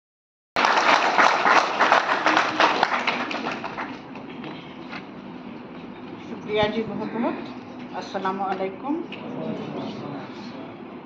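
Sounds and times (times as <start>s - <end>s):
audience clapping: 0.6s - 4.6s.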